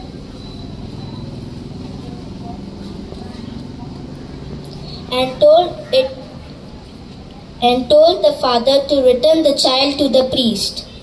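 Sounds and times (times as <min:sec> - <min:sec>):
low motor or fan rumble: 0:00.0 - 0:08.4.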